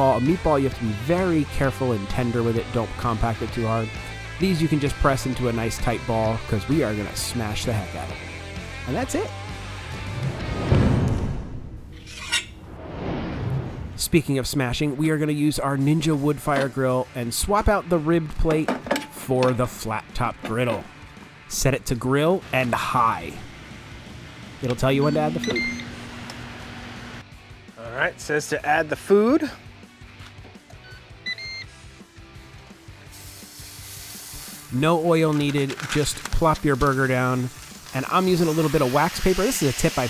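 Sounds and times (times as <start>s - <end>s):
background music: 0.0s - 11.5s, 14.1s - 40.0s
two-part electronic beep: 25.0s - 25.9s.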